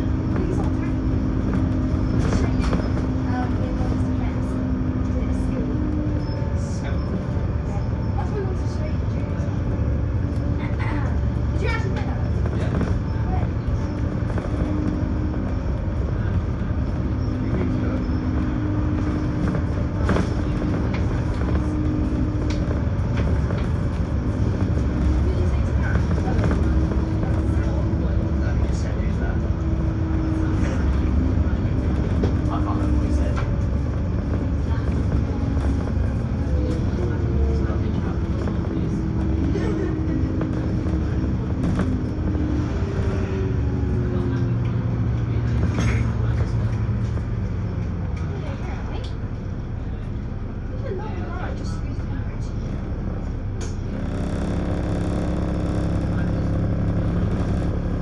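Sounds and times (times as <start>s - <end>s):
bus diesel engine: 0.0s - 58.0s
drivetrain whine: 0.0s - 58.0s
road rumble: 0.0s - 58.0s.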